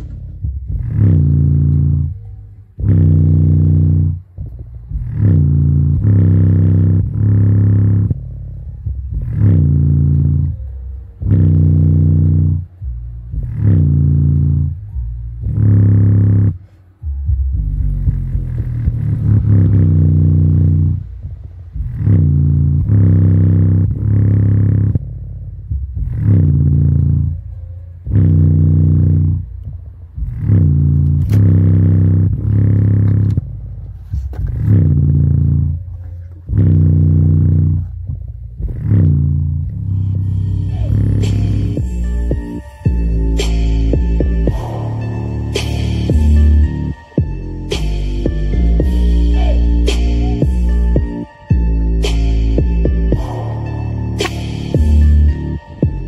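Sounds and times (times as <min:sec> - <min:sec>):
bass-heavy music through speaker: 0:00.0 - 0:56.0.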